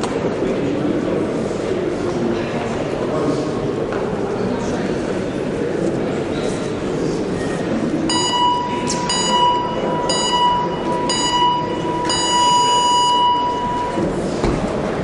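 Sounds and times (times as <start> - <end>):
electronic timer beeps: 8.1 - 14.0.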